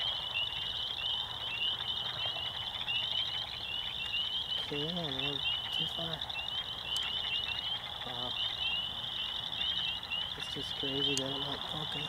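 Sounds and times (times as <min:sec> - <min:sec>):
frogs peeping: 0:00.0 - 0:12.0.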